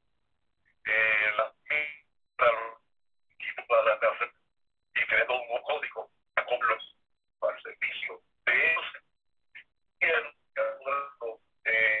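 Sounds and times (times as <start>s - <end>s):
person talking over telephone: 0.9s - 12.0s.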